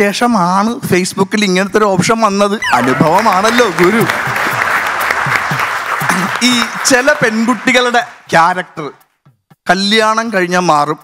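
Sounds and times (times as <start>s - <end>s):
man talking: 0.0s - 4.3s, 6.1s - 9.0s
audience applauding: 2.6s - 8.4s.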